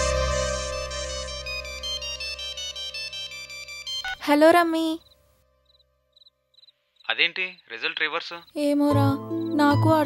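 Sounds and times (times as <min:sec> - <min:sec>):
mobile phone ringtone: 0:01.8 - 0:04.4.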